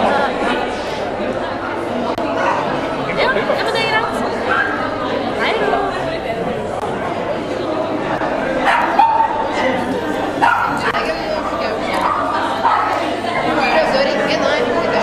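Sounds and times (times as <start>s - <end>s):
crowd chatter: 0.0s - 15.0s
dog barks and yips: 8.7s - 9.4s, 10.4s - 10.8s.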